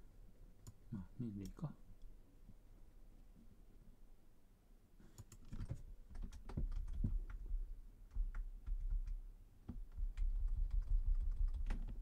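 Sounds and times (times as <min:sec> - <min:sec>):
computer keyboard typing: 0:05.2 - 0:12.0.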